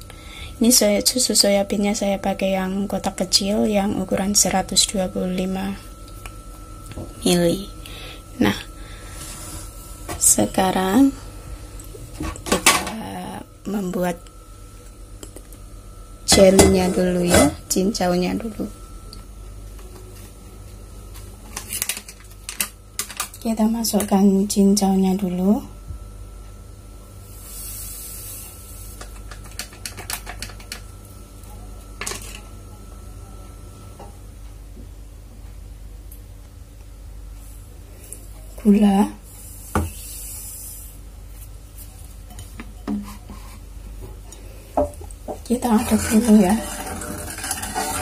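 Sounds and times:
low steady hum: 0.0 - 48.0.

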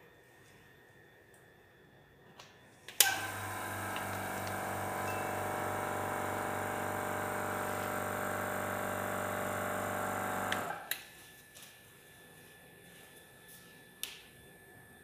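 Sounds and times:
electric motor humming: 3.0 - 10.8
motor switch click: 10.3 - 10.9.

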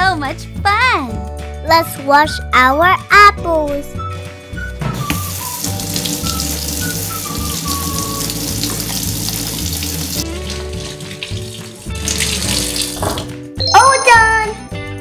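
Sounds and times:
faucet water splashing into sink: 4.9 - 13.3.

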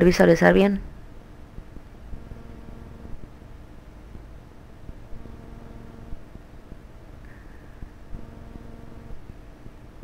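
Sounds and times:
recording setup hum: 0.0 - 10.0.

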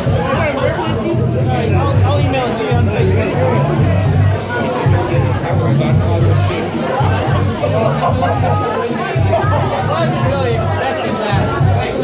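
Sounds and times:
music with pulsing bass beat: 0.0 - 12.0
people talking over one another: 0.0 - 12.0.

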